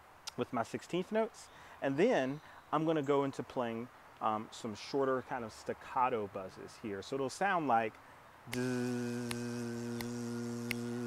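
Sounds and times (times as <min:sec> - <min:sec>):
man humming a buzz: 0:08.5 - 0:11.0
sharp ticks: 0:08.5 - 0:11.0.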